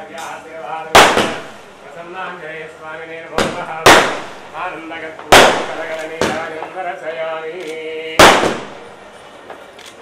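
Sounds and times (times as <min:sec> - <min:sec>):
loud sharp bang: 0:00.9 - 0:01.7, 0:03.4 - 0:06.7, 0:08.2 - 0:09.0.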